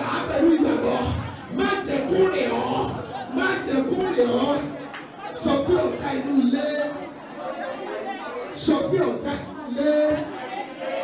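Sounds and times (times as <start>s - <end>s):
crowd praying aloud: 0.0s - 11.0s.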